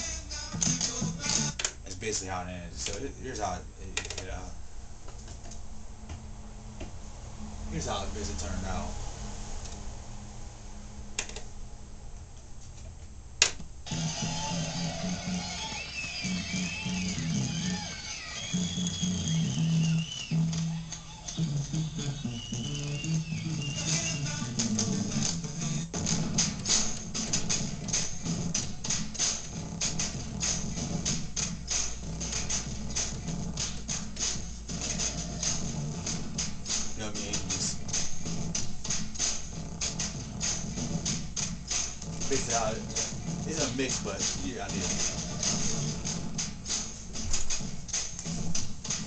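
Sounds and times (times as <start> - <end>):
bass line: 0.0 - 1.6, 13.9 - 49.0
fast high drum hits: 25.9 - 49.0.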